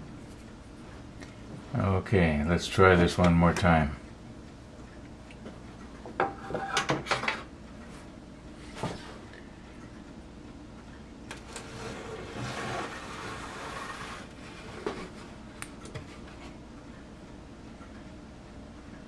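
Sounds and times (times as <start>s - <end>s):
soft plastic scraping: 11.5s - 15.3s.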